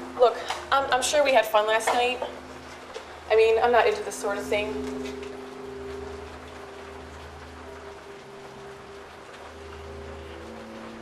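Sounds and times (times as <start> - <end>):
low musical drone: 0.0 - 11.0
rain-like hiss: 0.0 - 11.0.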